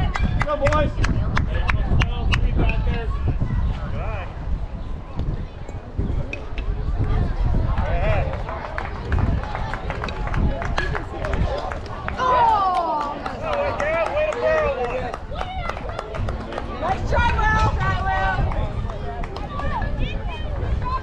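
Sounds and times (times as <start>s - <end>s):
wind rumble on microphone: 0.0s - 21.0s
spectators and players shouting: 11.2s - 21.0s.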